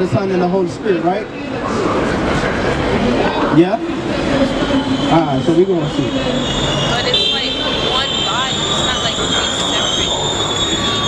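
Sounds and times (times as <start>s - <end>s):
busy city street noise: 0.0s - 11.0s
high-pitched squeal: 2.0s - 11.0s.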